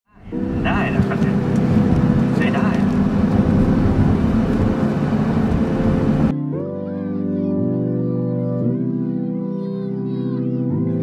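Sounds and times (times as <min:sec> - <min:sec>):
car engine and road noise: 0:00.1 - 0:06.3.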